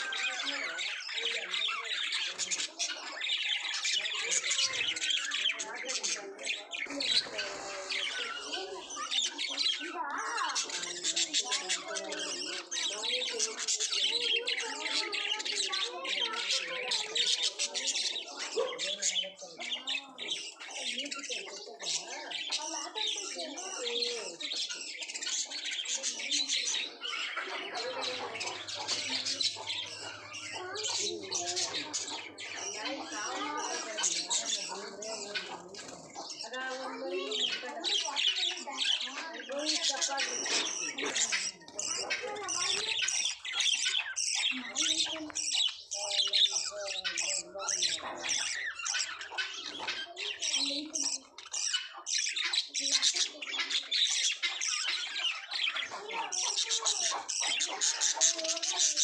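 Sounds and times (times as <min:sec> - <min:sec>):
budgerigars chattering and chirping: 0:00.0 - 0:59.0.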